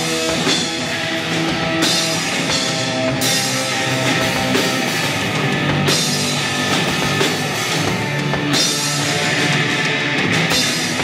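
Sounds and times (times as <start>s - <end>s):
distorted electric guitar: 0.0s - 11.0s
drum kit: 0.0s - 11.0s.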